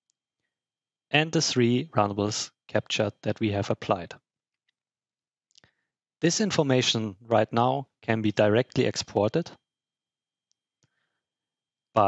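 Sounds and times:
man speaking: 1.2 - 4.2, 6.2 - 9.5.

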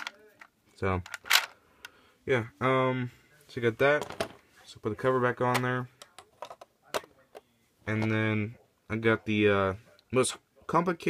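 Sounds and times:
plastic pieces clicking: 1.0 - 1.5.

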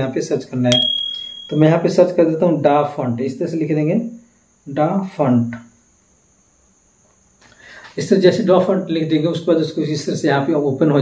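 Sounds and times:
faint high-pitched tone: 0.7 - 1.8
soft breath: 7.4 - 8.0.

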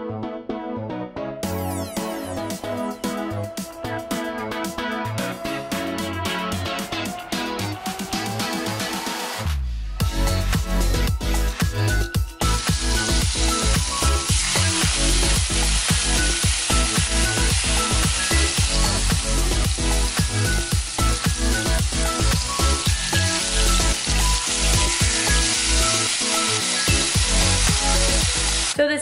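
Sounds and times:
background music with a beat: 0.0 - 28.8
chicken sizzling in a hot pan: 12.4 - 28.8.

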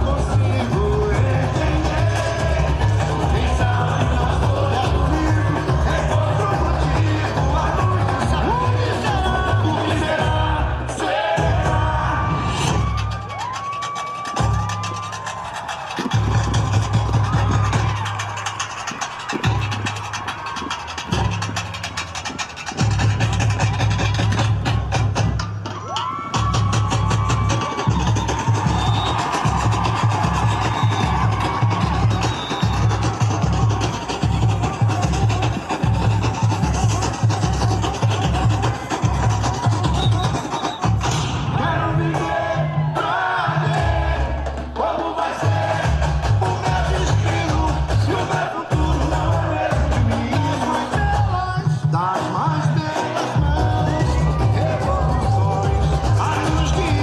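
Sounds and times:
heavy bass drums: 0.0 - 57.0
fast shaker and small drum ticking: 12.8 - 41.2.

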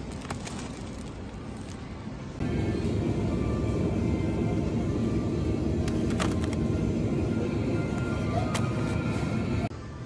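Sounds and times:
low store ambience rumble: 0.0 - 10.0.

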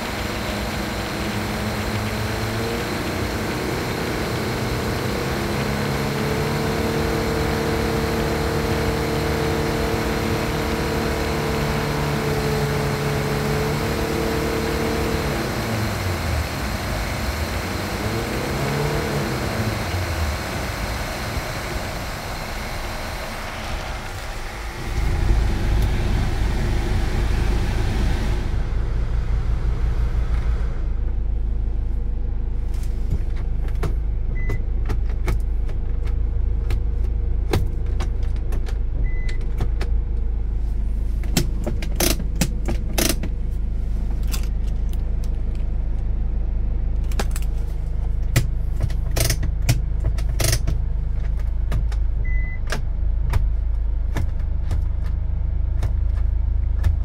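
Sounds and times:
air conditioning blower rushing: 0.0 - 31.8
low engine rumble: 0.0 - 57.0.

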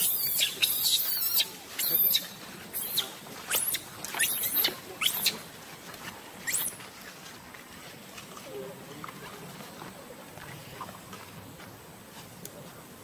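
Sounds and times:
baby monkey squealing: 0.0 - 5.4, 6.4 - 6.8.

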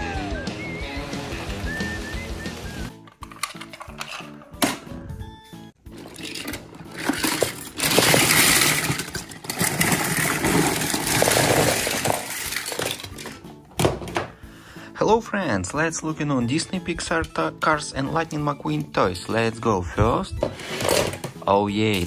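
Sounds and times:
film music: 0.0 - 22.0
metal toy cars clattering onto floor: 5.9 - 14.0, 20.6 - 21.4.

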